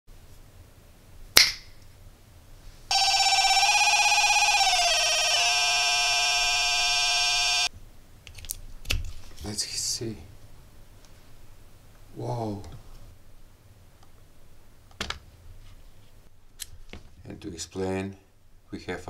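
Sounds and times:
electronic tone sliding down: 0:02.9 - 0:07.7.

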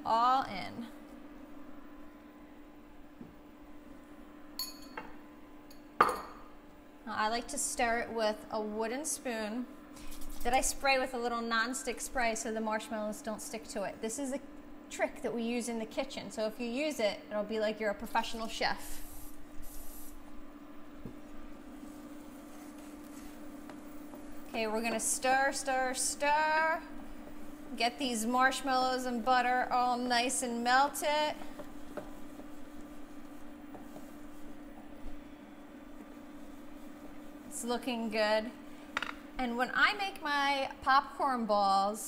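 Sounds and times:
faint steady hum: 0:00.0 - 0:42.0.

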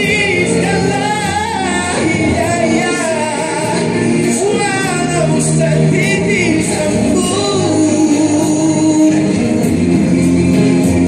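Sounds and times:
man singing into microphone: 0:00.0 - 0:10.3
musical accompaniment: 0:00.0 - 0:11.0.

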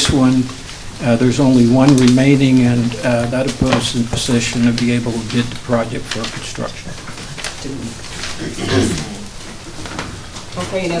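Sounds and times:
person's indistinct voice: 0:07.6 - 0:09.4.

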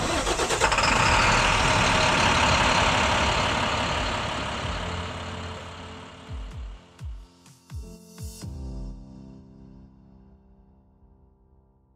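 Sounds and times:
diesel truck engine rumble: 0:00.0 - 0:06.8
music: 0:04.7 - 0:11.9.

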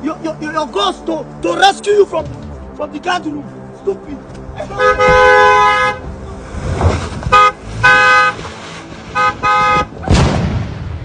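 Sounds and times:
car horn honking: 0:04.6 - 0:06.1, 0:07.3 - 0:08.4, 0:09.2 - 0:09.9.

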